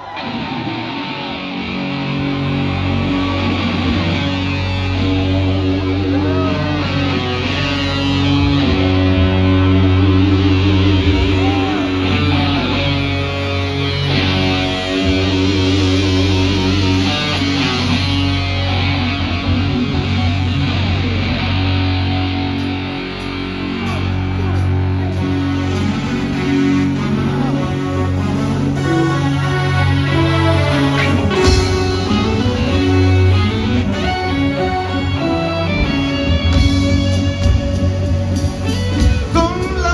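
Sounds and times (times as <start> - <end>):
electric guitar: 0.0 - 39.9
heavy bass: 0.0 - 39.9
live band playing: 0.0 - 39.9.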